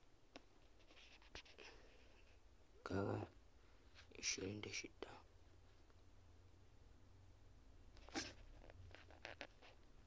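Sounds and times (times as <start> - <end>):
faint background hum: 0.0 - 10.0
person speaking quietly: 4.1 - 5.3.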